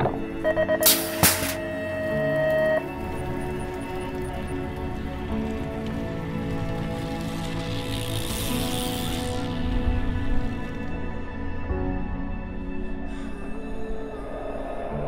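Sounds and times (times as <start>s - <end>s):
background music: 0.0s - 15.0s
long electronic beep: 0.4s - 2.9s
starting gate slamming down: 0.8s - 1.8s.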